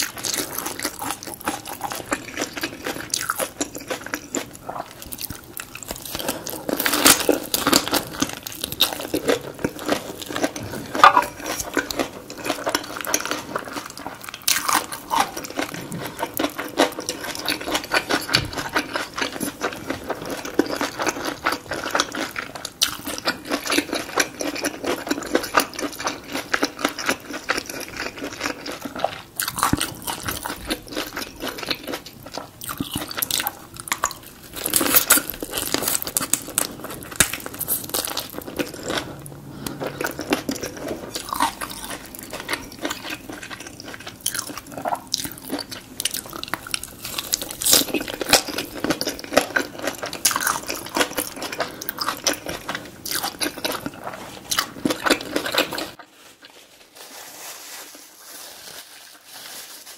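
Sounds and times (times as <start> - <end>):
crunchy chewing: 0.0 - 56.6.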